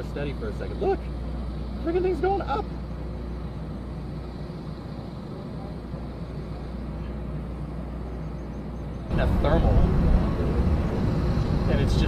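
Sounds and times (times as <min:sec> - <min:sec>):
constant low rumble: 0:00.0 - 0:12.0.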